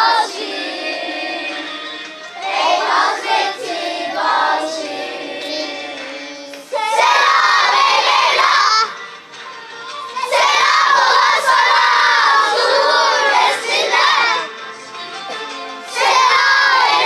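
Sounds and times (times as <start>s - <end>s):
children's choir shouting a chant: 0.0s - 1.7s, 2.4s - 6.1s, 6.7s - 9.0s, 10.2s - 14.5s, 15.9s - 17.0s.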